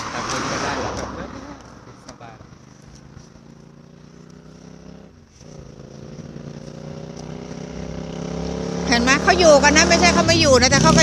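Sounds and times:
vehicle engine approaching: 0.0s - 11.0s.

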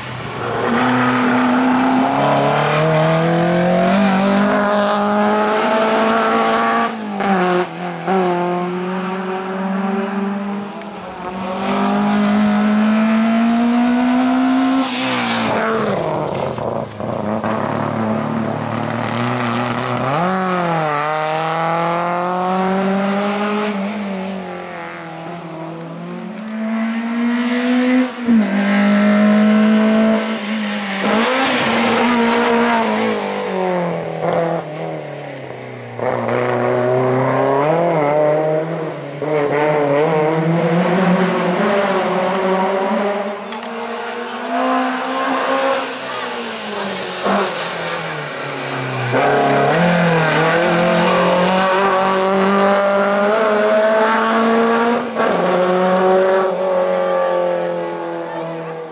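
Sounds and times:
racing car engine revving: 0.3s - 35.0s, 36.0s - 58.9s.

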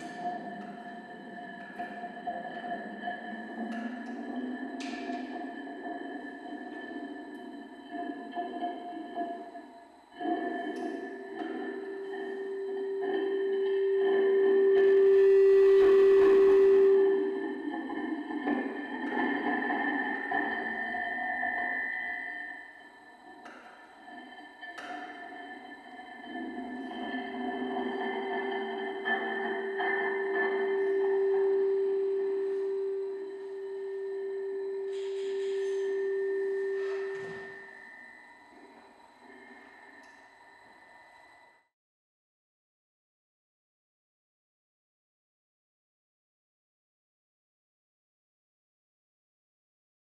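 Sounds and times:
faint high steady tone: 11.1s - 17.4s, 27.1s - 41.7s
steady pure tone: 11.1s - 17.5s, 25.2s - 41.7s
low electronic drone: 12.5s - 17.4s, 25.9s - 38.6s
high steady tones: 14.7s - 17.1s.

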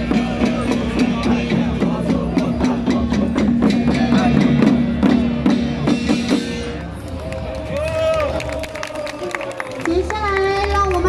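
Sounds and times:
street crowd hum: 0.0s - 11.0s.

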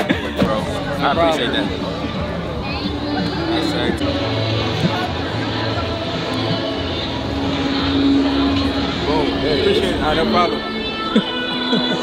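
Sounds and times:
engine-like droning hum: 7.6s - 12.0s.

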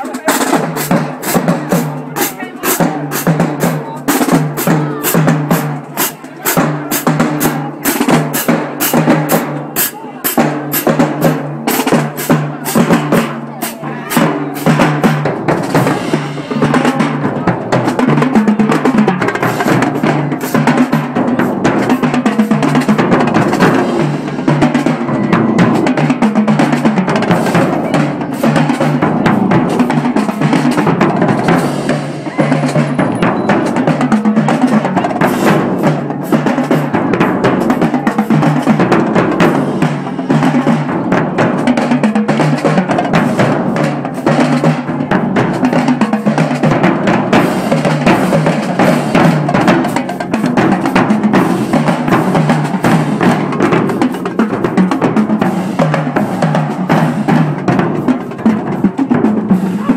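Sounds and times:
bass drums: 0.0s - 59.9s
cymbals: 0.0s - 59.9s
snare drums: 0.0s - 59.9s.

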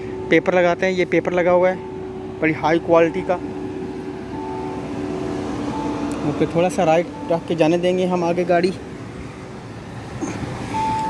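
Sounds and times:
higher tone: 0.0s - 9.4s
vehicle engine idling: 0.0s - 11.0s.

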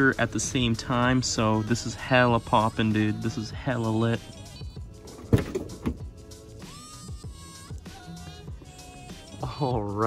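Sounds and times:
background music: 0.0s - 10.0s
car door knock: 5.1s - 6.1s.

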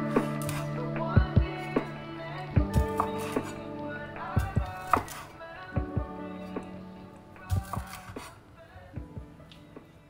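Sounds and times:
knife chopping on wooden board: 4.8s - 5.2s.

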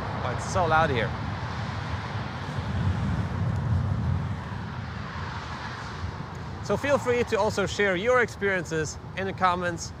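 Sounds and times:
traffic rumble under overpass: 0.0s - 10.0s.

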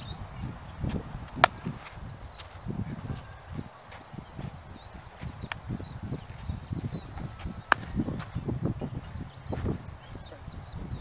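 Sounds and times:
bat striking baseball: 1.3s - 1.8s, 7.7s - 8.0s.

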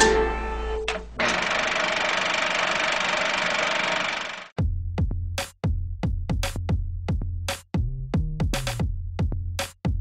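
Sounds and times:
electronic music with drum beat: 4.6s - 10.0s.

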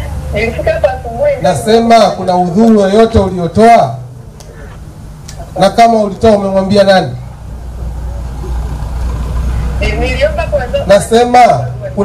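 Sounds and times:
faint noisy hiss: 0.0s - 12.0s
steady low hum: 0.0s - 12.0s.

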